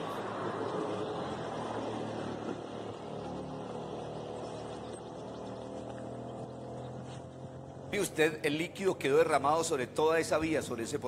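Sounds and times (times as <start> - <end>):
road traffic noise: 0.0 - 11.0
vehicle engine humming: 0.0 - 11.0.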